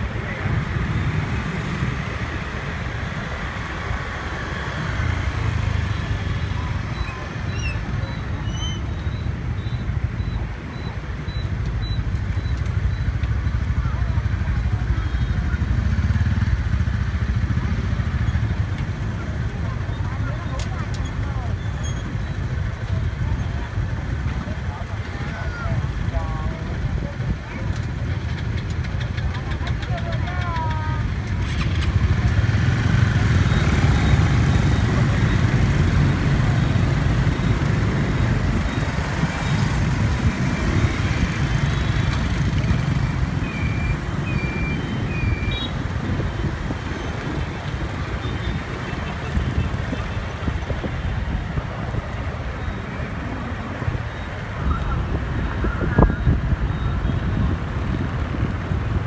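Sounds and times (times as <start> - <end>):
road rumble: 0.0 - 59.0
scooter engines running: 0.0 - 59.0.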